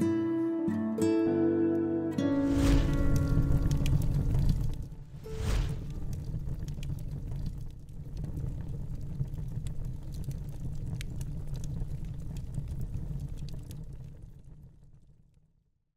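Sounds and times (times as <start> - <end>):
fire rumble with faint crackles: 2.4 - 15.8.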